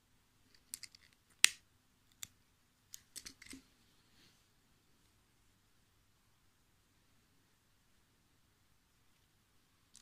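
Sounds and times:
fingers handling lace clicking: 0.5s - 3.6s.

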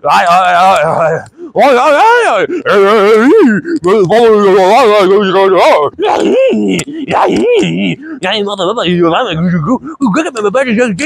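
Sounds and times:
man groaning calls: 0.0s - 10.3s.

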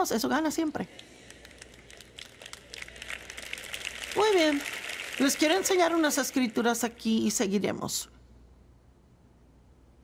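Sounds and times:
audience clapping: 0.9s - 7.0s.

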